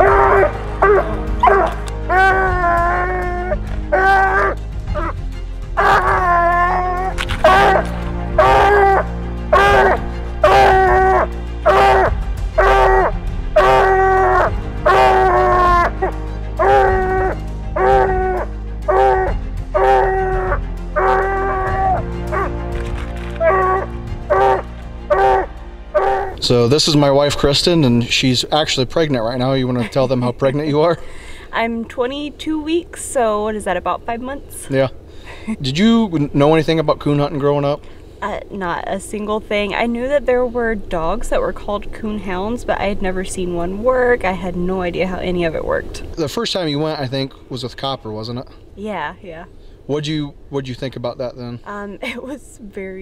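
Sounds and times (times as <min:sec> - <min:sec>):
dog barking: 0:00.0 - 0:02.3, 0:07.4 - 0:07.8, 0:08.4 - 0:11.1, 0:16.6 - 0:17.0, 0:23.4 - 0:26.3
low music: 0:00.0 - 0:48.5.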